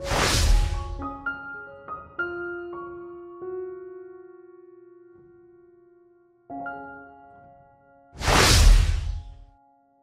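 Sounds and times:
whoosh with deep rumble: 8.2s - 9.4s.

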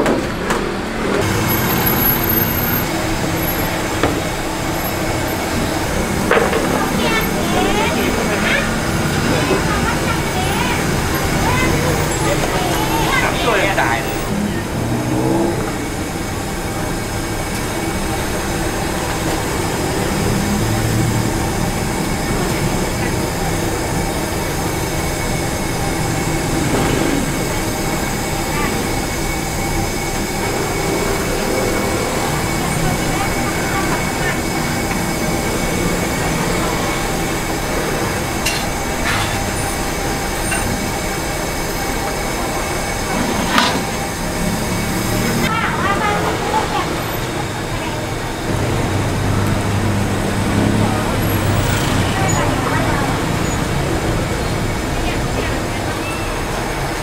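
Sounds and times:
traffic and engine hum: 0.0s - 57.0s.

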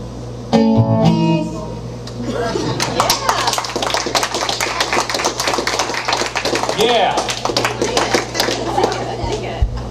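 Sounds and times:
audience applauding: 2.7s - 9.5s.

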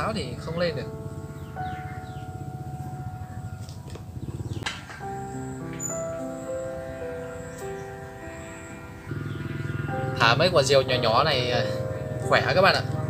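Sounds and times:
sustained background music: 0.0s - 13.0s.

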